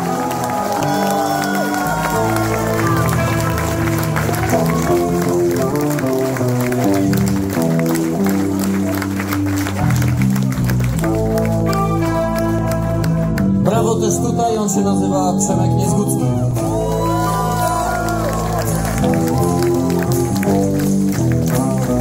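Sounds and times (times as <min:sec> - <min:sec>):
heavy metal band playing: 0:00.0 - 0:10.8, 0:11.8 - 0:22.0
audience applause: 0:00.0 - 0:13.5, 0:16.6 - 0:22.0
electric guitar lead: 0:00.0 - 0:22.0.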